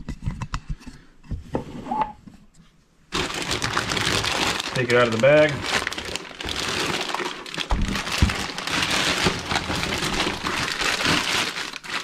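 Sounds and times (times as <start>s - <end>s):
plastic bag crinkling loudly: 3.1s - 12.0s.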